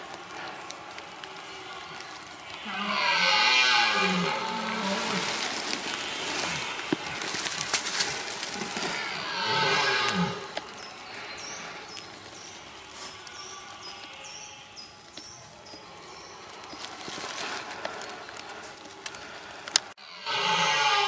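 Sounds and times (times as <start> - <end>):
deer stag roaring: 0.0 - 11.8, 20.0 - 21.0.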